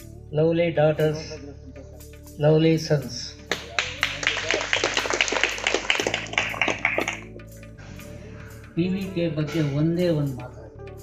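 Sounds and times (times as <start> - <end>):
crowd clapping: 3.5 - 7.4.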